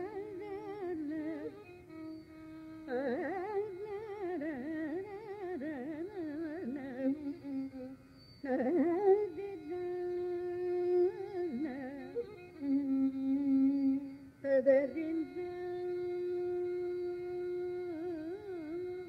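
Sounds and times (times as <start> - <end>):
high voice singing ornamented phrases: 2.8 - 18.9.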